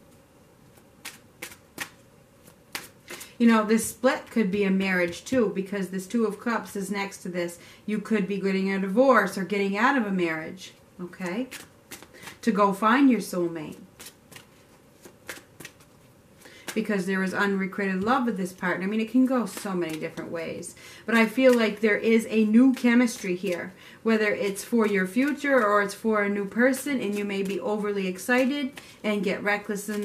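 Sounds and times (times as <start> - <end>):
cards shuffling: 0.6 - 5.4, 11.3 - 12.5, 13.7 - 17.3, 17.9 - 30.0
sharp card snaps: 1.0 - 2.0, 2.7 - 3.3.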